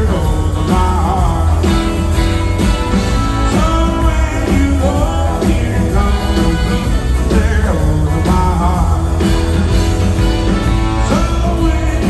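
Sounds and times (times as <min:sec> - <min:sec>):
live rock and roll band: 0:00.0 - 0:12.0.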